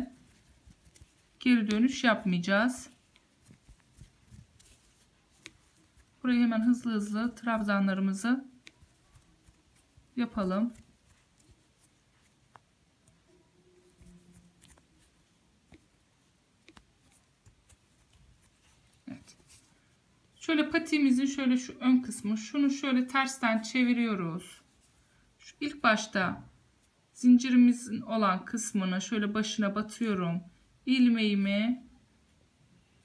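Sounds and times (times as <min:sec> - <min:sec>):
faint rustling of yarn: 0:00.0 - 0:33.0
crochet hook ticking: 0:16.6 - 0:17.8.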